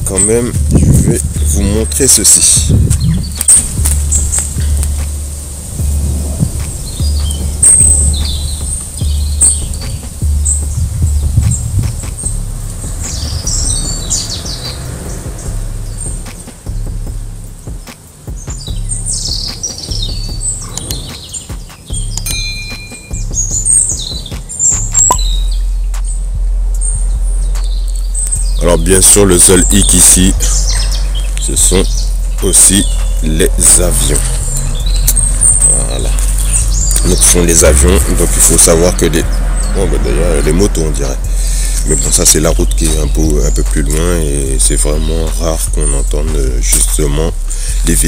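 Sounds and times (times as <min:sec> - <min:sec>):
songbirds chirping: 0:00.0 - 0:48.0
steady low rumble: 0:00.0 - 0:48.0.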